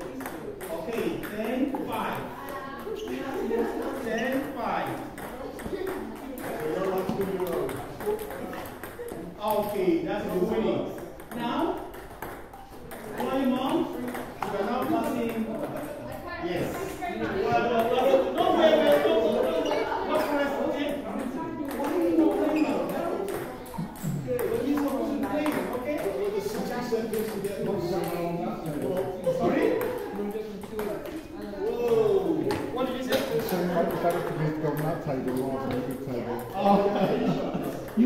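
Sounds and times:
chatter of voices: 0.0s - 38.0s.

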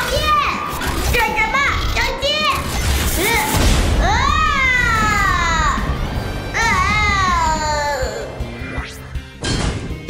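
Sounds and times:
high-pitched cartoon voice: 0.0s - 5.8s.

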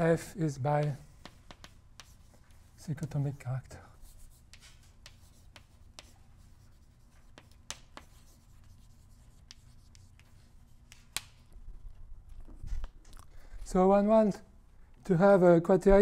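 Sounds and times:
low room hum: 0.0s - 16.0s
chalk scratching on blackboard: 0.7s - 3.2s, 4.0s - 11.4s.

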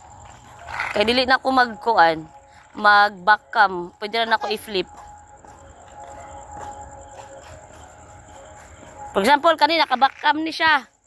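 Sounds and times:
faint distant music: 0.0s - 11.0s
insects trilling: 0.0s - 11.0s.

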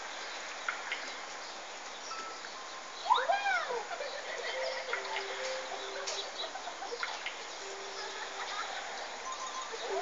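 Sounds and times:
rain on a wet street: 0.0s - 10.0s.

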